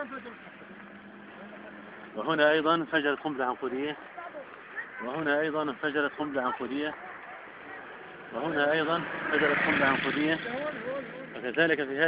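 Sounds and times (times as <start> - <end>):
outdoor background noise: 0.0 - 12.0
man speaking: 1.5 - 7.0, 7.8 - 12.0.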